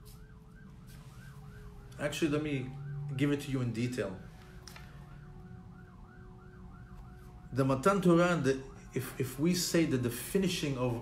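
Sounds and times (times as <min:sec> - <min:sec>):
faint yelping siren: 0:00.0 - 0:11.0.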